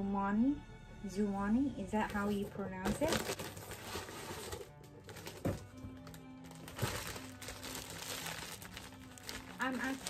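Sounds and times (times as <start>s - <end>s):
soft background music: 0.0s - 10.0s
plastic packaging crinkling: 2.8s - 10.0s.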